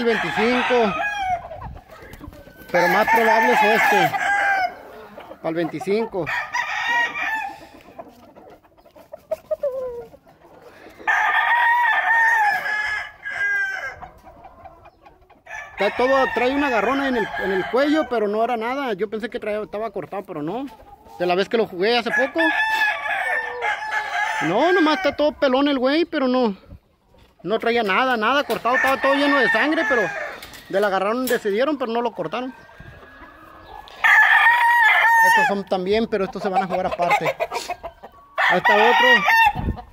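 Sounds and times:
rooster crowing: 0.0s - 1.5s, 2.6s - 5.0s, 6.2s - 7.7s, 11.0s - 14.0s, 15.5s - 18.2s, 22.0s - 25.2s, 28.6s - 30.6s, 32.5s - 35.6s, 38.4s - 39.7s
rooster clucking: 0.0s - 25.5s, 27.2s - 39.9s.

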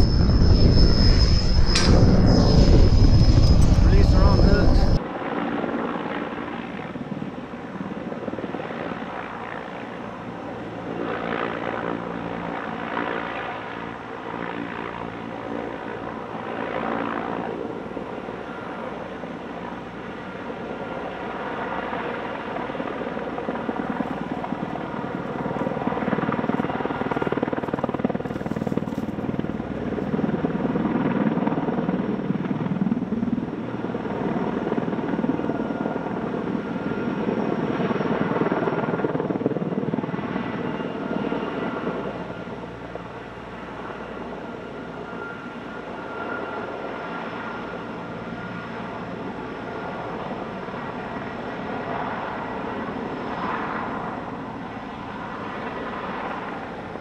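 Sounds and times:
helicopter engine and rotor: 0.0s - 57.0s.

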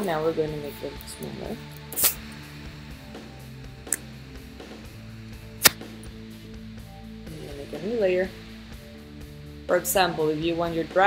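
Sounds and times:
soft music with held tones: 0.0s - 11.0s.

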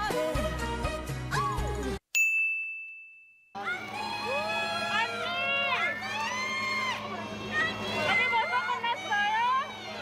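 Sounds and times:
bright bell-like ding: 2.1s - 3.6s
crowd calling and cheering: 3.6s - 10.0s.

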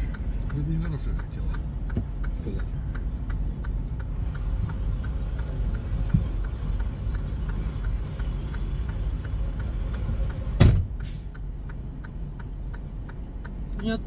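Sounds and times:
light ticking: 0.0s - 14.0s.

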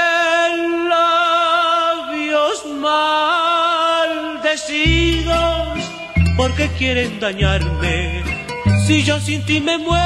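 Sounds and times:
deep bass notes: 4.9s - 10.0s.

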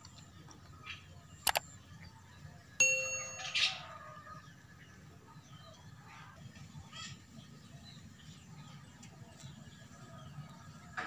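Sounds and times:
notification bell ding: 2.8s - 4.0s.

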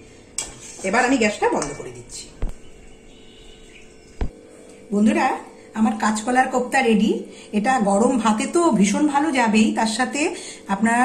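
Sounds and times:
utensil clinking against cookware: 0.4s - 2.2s.

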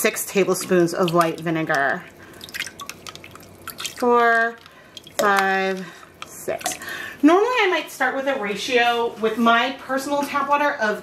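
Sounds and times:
faint splashes and drips: 0.3s - 7.0s.

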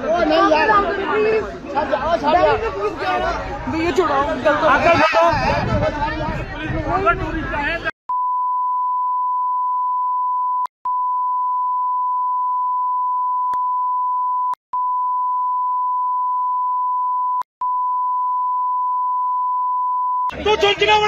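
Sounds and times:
high censor bleep tone: 8.1s - 20.3s.

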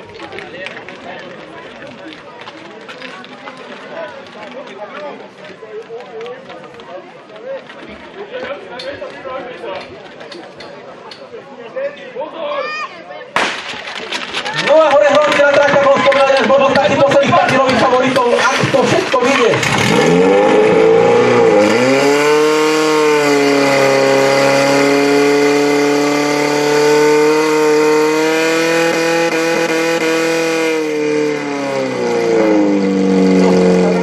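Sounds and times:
pump engine running hard: 31.9s - 34.0s.

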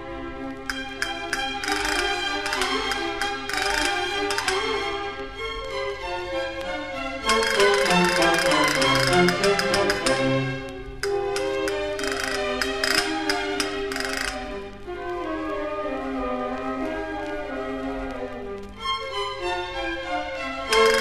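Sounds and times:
strings playing melody: 0.0s - 21.0s
castanet rattles: 0.7s - 4.9s, 7.3s - 14.6s, 20.7s - 21.0s.

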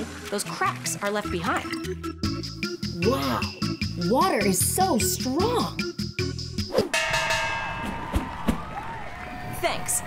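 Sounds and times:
ringing hit: 6.9s - 8.4s.

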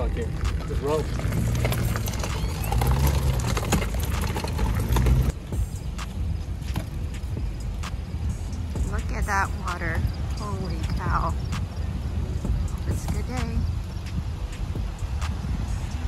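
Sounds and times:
wind rumbling on microphone: 0.0s - 16.0s.

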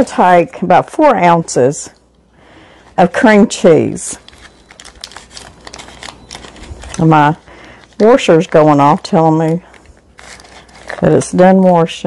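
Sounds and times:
paper wrapper crinkling: 3.9s - 11.6s.

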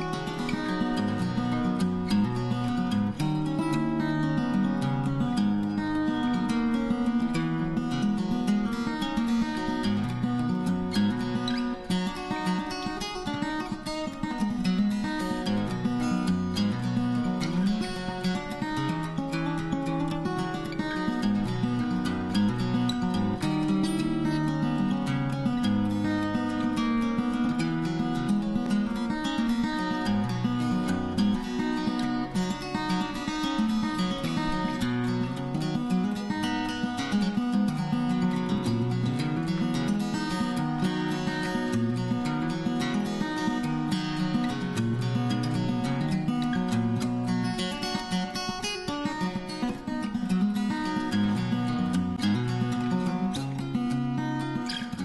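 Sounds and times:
acoustic guitar plucked and strummed: 0.0s - 55.0s.

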